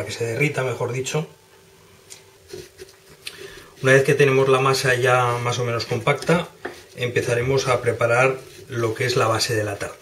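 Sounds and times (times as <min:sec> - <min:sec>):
man speaking: 0:00.0 - 0:01.4, 0:03.8 - 0:10.0
ceramic bowls tapping and scraping: 0:06.1 - 0:07.6.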